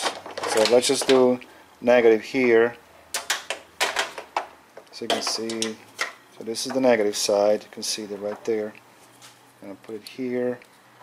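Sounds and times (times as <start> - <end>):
test lead connectors clicking: 3.1 - 6.9.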